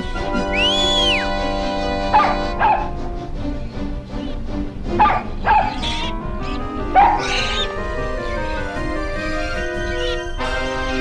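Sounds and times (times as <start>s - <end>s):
background music: 0.0s - 11.0s
cartoon puppy yelping: 5.0s - 10.4s.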